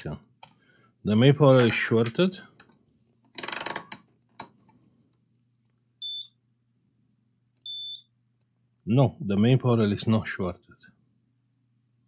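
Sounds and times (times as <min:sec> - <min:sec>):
short high beeps: 0:06.0 - 0:06.3, 0:07.7 - 0:08.1.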